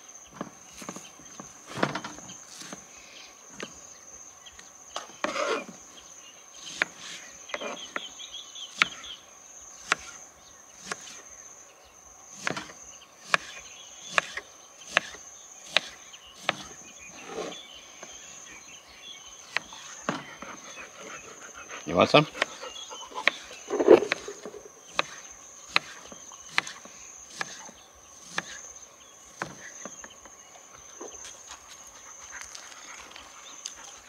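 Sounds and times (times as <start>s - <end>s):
high insect drone: 0.0s - 34.0s.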